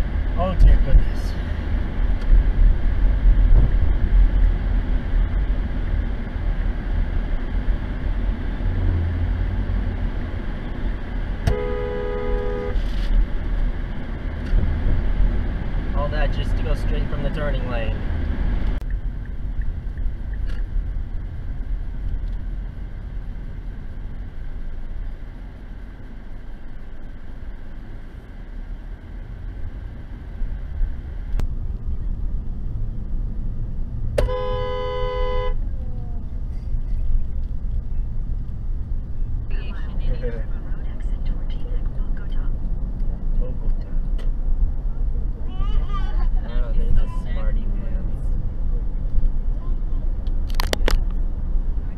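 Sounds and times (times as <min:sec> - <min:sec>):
road and engine rumble in car: 0:00.0 - 0:51.9
car horn: 0:11.4 - 0:12.9, 0:34.2 - 0:35.6.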